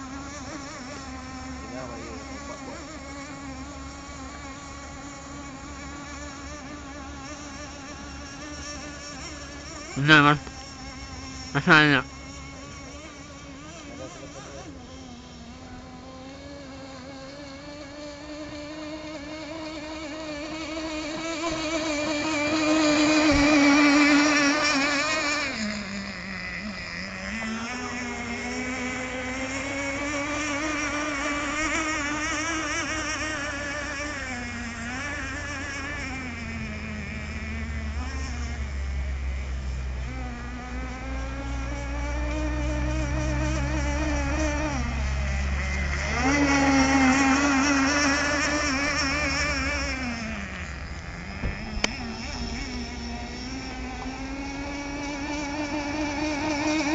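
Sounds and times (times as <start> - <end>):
model boat engine buzzing whine: 0.0 - 56.9.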